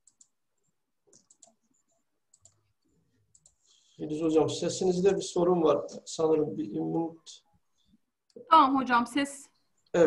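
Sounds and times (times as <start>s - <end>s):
faint scattered clicks: 0.0s - 0.4s, 1.1s - 1.6s, 2.3s - 2.7s, 3.3s - 3.7s.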